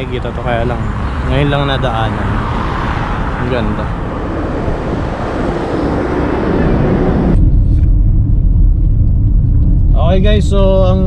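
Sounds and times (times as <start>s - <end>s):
cars passing: 0.0s - 11.0s
car cabin rumble: 6.7s - 11.0s.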